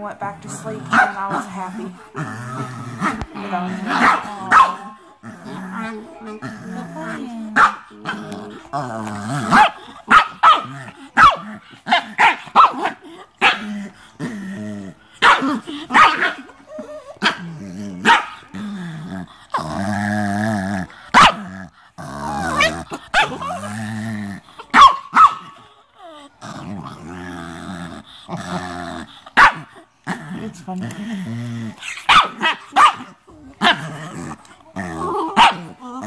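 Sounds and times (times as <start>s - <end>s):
dogs growling: 0.0s - 36.0s
small dogs barking and yipping: 3.0s - 5.0s, 7.6s - 8.4s, 9.4s - 13.7s, 15.2s - 18.5s, 21.1s - 21.5s, 22.4s - 23.6s, 24.6s - 25.6s, 29.4s - 29.7s, 31.8s - 33.9s, 35.0s - 36.0s.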